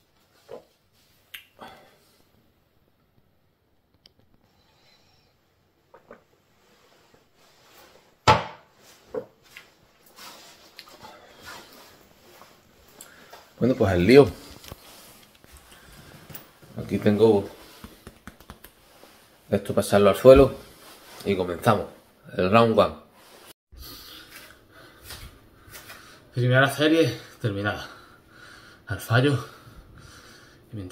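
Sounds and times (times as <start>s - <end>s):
man breathing hard: 27.9s - 28.9s, 29.5s - 30.7s.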